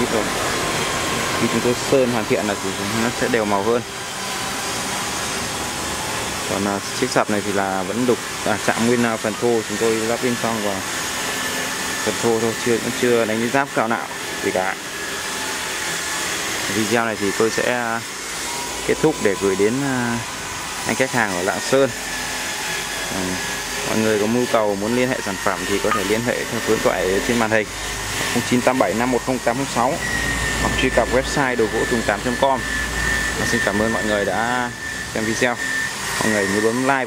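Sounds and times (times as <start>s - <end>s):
motor running with whine: 0.0s - 37.0s.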